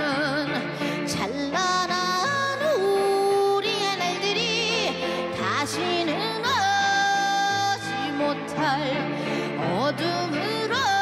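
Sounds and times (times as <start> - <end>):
woman singing slow melody: 0.0 - 11.0.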